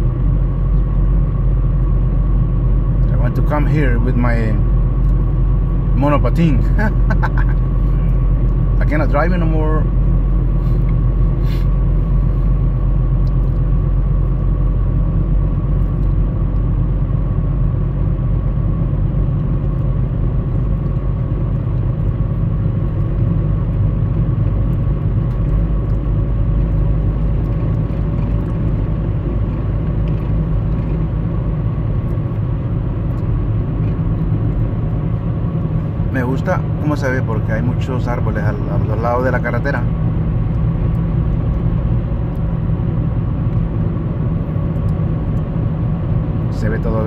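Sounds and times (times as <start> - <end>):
car engine and tyre rumble: 0.0 - 47.0.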